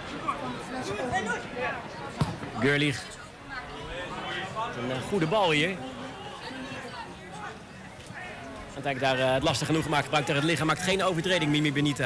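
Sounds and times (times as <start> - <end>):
football kicked thump: 2.2 - 2.5.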